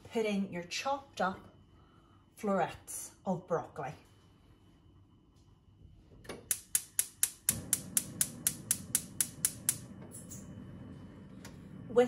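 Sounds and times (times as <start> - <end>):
gas igniter clicking: 6.5 - 10.4
gas flame rushing: 6.5 - 12.0.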